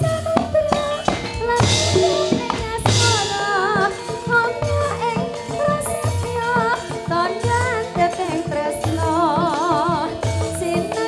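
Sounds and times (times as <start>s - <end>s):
low drum beats: 0.0s - 5.3s
live band playing: 0.0s - 8.6s
woman singing with vibrato: 0.0s - 11.0s
cymbal crashes: 1.0s - 4.8s.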